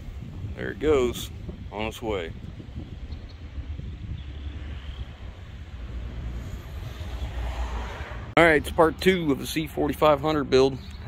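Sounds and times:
truck engine and tyres rumbling: 0.0s - 11.0s.

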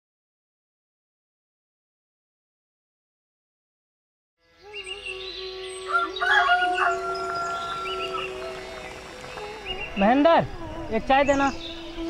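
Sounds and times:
birds chirping: 4.4s - 12.0s
rooster crowing: 5.8s - 9.8s.

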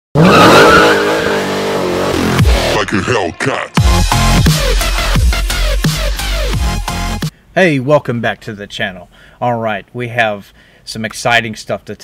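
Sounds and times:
car engine revving hard: 0.2s - 2.8s.

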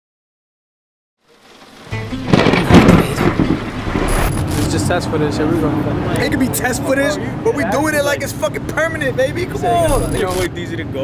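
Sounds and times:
thunder rumble with cracks: 1.4s - 5.0s.

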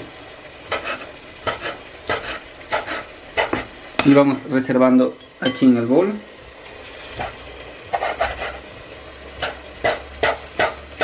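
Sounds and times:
knife cutting on wooden board: 0.7s - 3.7s, 7.2s - 8.6s, 9.4s - 10.8s.

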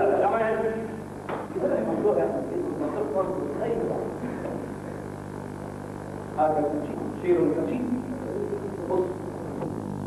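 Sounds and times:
men talking: 0.0s - 4.7s, 6.5s - 9.6s
steady low hum: 0.0s - 10.0s.

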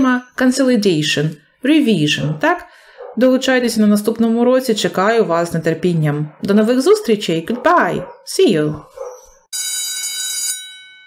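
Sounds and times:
ringing bell-like electronic tone: 9.5s - 11.0s.

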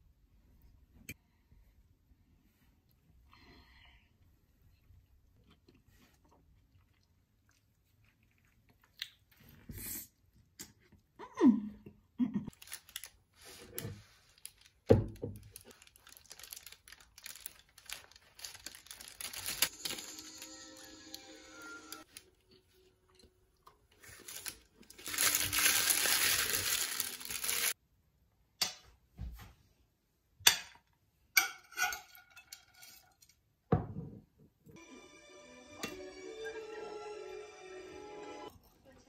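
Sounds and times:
paper bag crinkling: 12.5s - 22.3s, 24.0s - 27.8s
dishes clinking: 31.4s - 33.2s.

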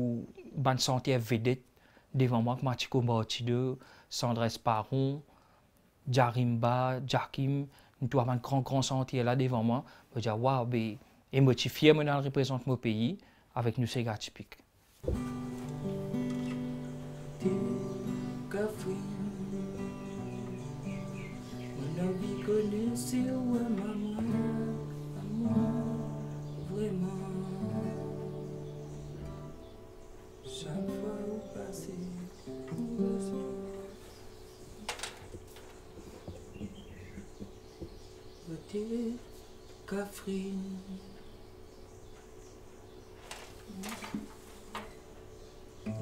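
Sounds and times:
nylon-string acoustic guitar: 15.0s - 34.0s.

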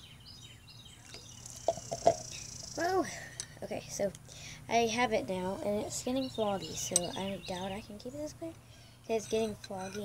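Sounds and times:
small bird chirping: 0.0s - 2.9s, 5.8s - 10.0s.

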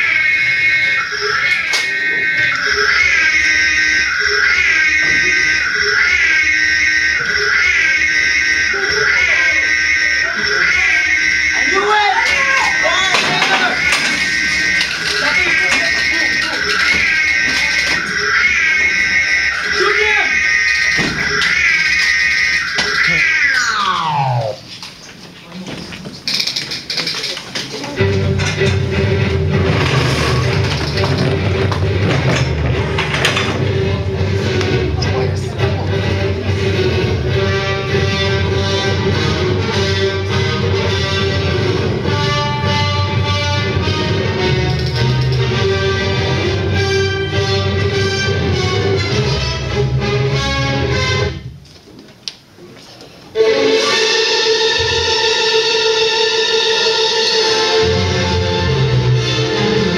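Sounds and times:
whooping alarm siren: 0.0s - 24.7s.

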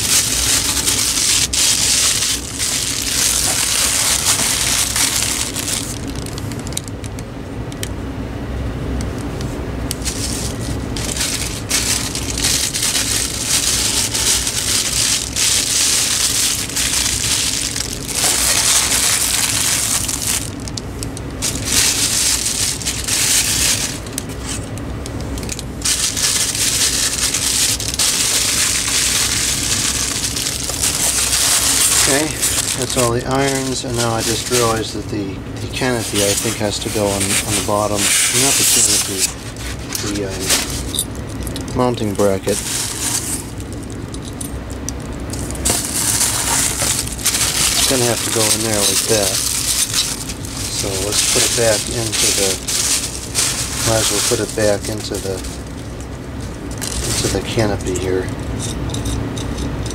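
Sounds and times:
cardboard and foam scraping: 0.0s - 6.0s, 10.0s - 20.5s, 25.8s - 35.0s, 35.6s - 41.0s, 42.4s - 43.5s, 45.6s - 55.6s
plastic bags crinkling: 0.0s - 6.8s, 10.0s - 58.5s.

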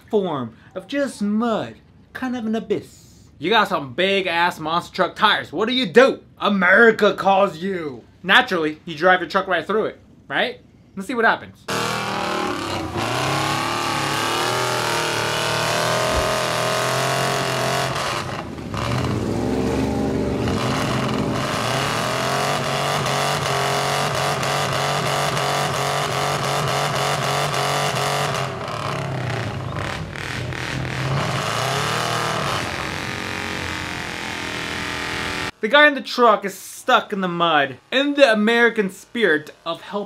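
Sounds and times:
truck engine revving hard: 11.7s - 35.6s.

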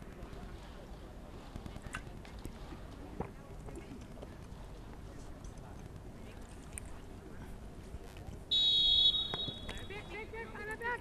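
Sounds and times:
low stadium rumble: 0.0s - 11.0s.

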